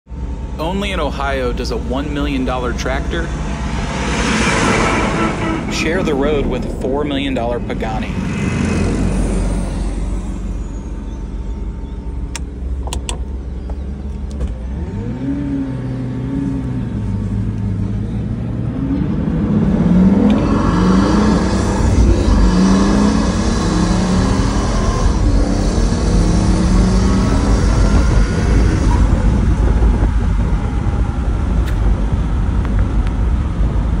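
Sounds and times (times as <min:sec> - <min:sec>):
car engine accelerating from cabin: 0:00.2 - 0:34.0
gear changes: 0:00.2 - 0:34.0.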